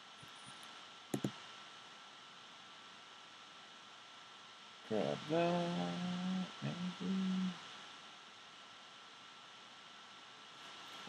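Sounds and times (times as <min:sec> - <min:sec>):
faint steady hiss: 0:00.0 - 0:11.0
thin high whine: 0:04.9 - 0:07.7.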